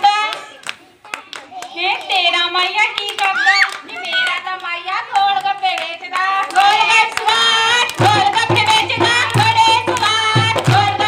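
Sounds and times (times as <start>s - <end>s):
hand clapping: 0.2s - 10.9s.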